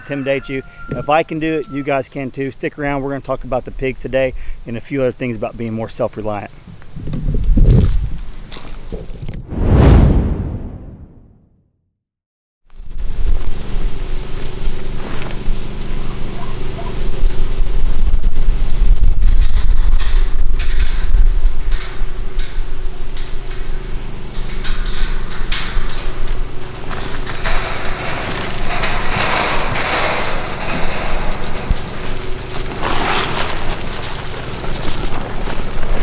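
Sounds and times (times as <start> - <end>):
motor hum with low rumble: 12.7 - 36.0
rattling noise: 17.9 - 36.0.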